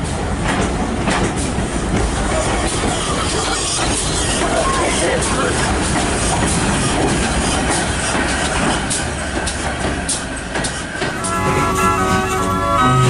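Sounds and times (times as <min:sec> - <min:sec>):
steam train passing: 0:00.0 - 0:13.0
wheels clicking over rail joints: 0:00.4 - 0:11.2.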